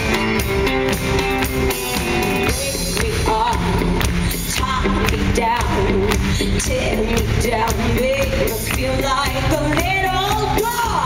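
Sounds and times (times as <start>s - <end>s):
bass guitar: 0.0s - 11.0s
drum kit: 0.0s - 11.0s
electric guitars: 0.0s - 11.0s
woman singing: 2.4s - 11.0s.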